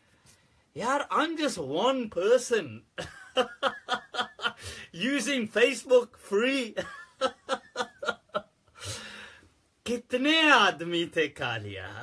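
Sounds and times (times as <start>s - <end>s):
man laughing: 3.0s - 4.8s, 6.7s - 8.6s.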